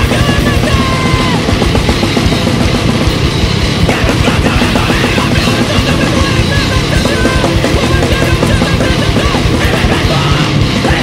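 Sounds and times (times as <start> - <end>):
distorted electric guitar: 0.0 - 11.0
fast drum kit: 0.0 - 11.0.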